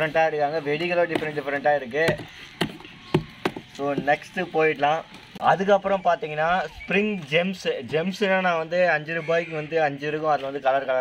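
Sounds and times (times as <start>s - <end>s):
cardboard packets knocking: 2.0s - 4.2s.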